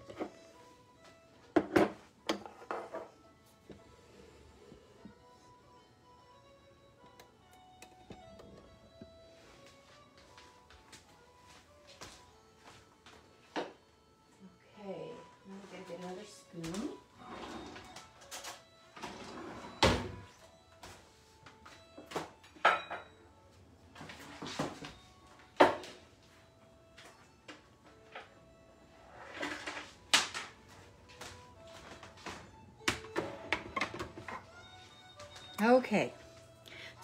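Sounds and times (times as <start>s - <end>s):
kitchen items knocking and clinking: 1.5s - 3.1s, 22.2s - 23.1s, 25.6s - 26.0s, 32.9s - 34.4s.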